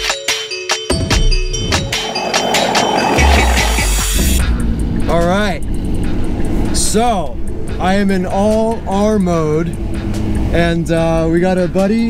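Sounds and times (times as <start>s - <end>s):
car engine and road noise: 1.0s - 12.0s
heavy low rumble: 1.3s - 6.4s
man's voice: 10.5s - 12.0s.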